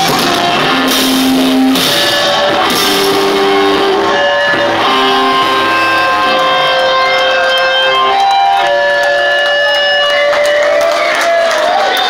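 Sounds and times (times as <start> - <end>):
guitar amp feedback tones: 0.0 - 12.0.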